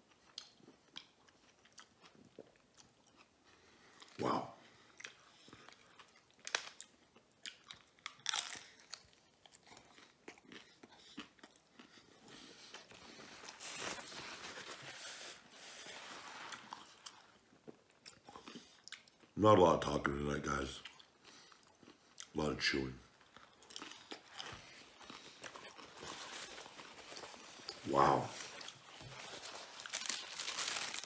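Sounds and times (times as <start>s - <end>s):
crunchy chewing: 5.0s - 13.6s, 23.1s - 31.0s
paper wrappers rustling: 13.0s - 17.0s, 25.4s - 31.0s.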